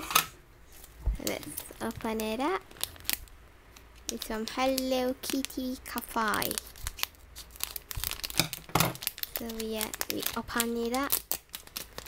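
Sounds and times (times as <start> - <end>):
plastic packaging tearing and crinkling: 0.7 - 12.0.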